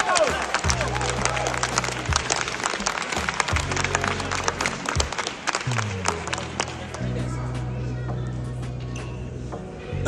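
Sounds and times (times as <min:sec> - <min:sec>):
audience applauding: 0:00.0 - 0:07.4
music with low bass notes: 0:03.2 - 0:10.0.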